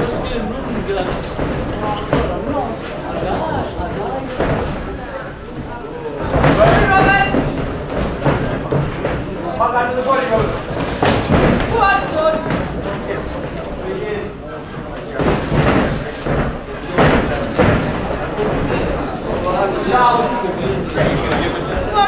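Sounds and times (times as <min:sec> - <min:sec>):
feet on ring canvas: 0:00.0 - 0:13.9, 0:14.6 - 0:20.2
crowd hubbub: 0:00.0 - 0:22.0.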